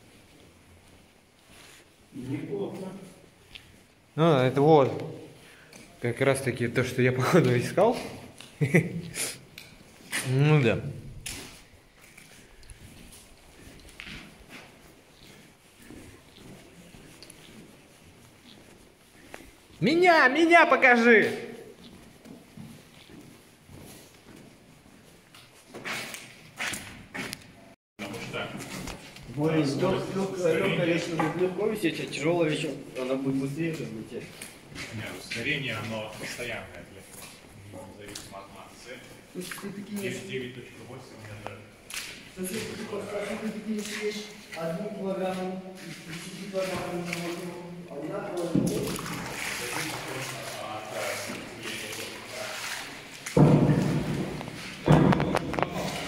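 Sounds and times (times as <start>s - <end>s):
footsteps scuffing on concrete: 11.2s - 19.8s, 21.5s - 27.5s
water sloshing from wading: 46.3s - 56.0s.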